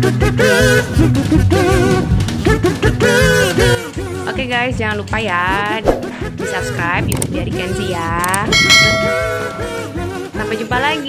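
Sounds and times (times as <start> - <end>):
background music: 0.0 - 11.0
bell chime ding: 8.6 - 10.2.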